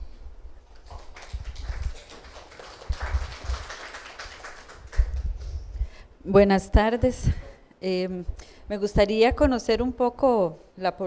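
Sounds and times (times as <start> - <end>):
faint room murmur: 0.4 - 6.4.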